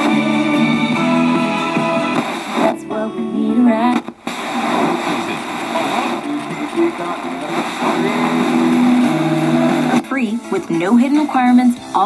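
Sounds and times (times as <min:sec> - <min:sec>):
radio playing music: 0:00.0 - 0:12.0
voice over radio music: 0:02.5 - 0:12.0.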